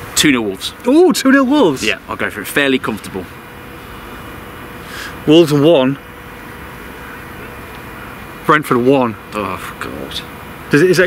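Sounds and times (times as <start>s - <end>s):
even hiss: 0.0s - 11.0s.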